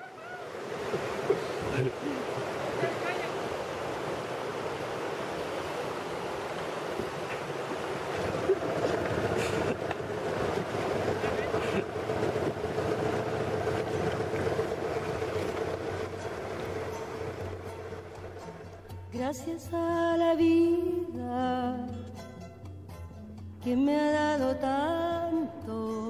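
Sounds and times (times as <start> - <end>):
paddle splashes: 0.0 - 19.1
white water rushing: 0.0 - 19.2.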